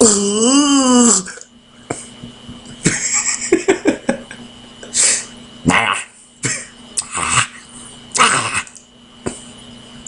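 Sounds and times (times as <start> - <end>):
person coughing throat noises: 6.4 - 7.6.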